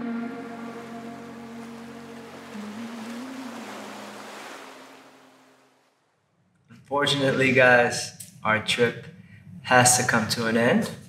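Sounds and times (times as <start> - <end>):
slow ambient music pad: 0.0 - 5.7
ocean waves on sandy shore: 0.0 - 6.2.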